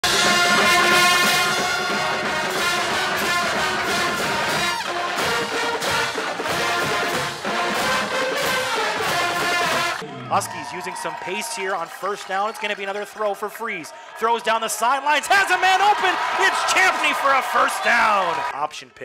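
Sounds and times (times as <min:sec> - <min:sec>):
loud brass music: 0:00.0 - 0:10.5.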